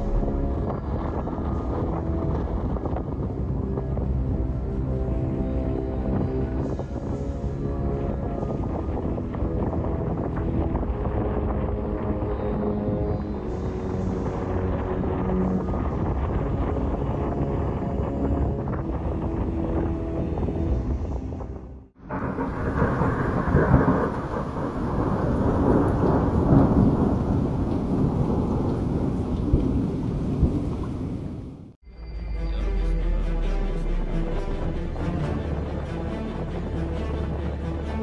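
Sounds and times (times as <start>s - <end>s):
rolling thunder: 0.0s - 31.8s
rushing rumble of a storm: 0.0s - 31.8s.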